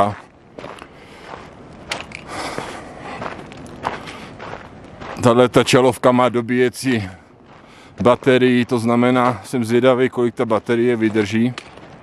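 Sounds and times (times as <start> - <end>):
footsteps on stony dirt trail: 0.0 - 12.0
stones clicking underfoot: 0.6 - 5.4, 10.6 - 12.0.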